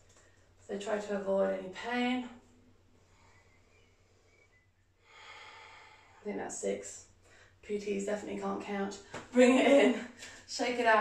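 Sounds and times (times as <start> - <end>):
woman breathing softly: 3.0 - 6.3.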